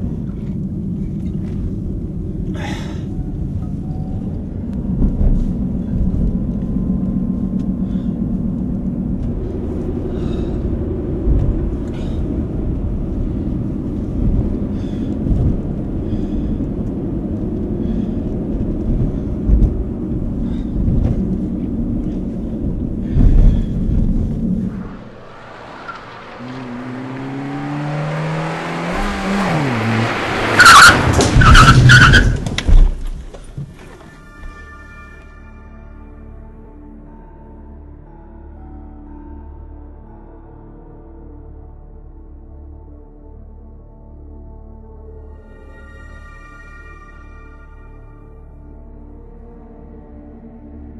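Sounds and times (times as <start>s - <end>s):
car engine and road rumble: 0.0s - 37.0s
engine revving: 24.4s - 32.5s
tyres squealing: 30.4s - 32.8s.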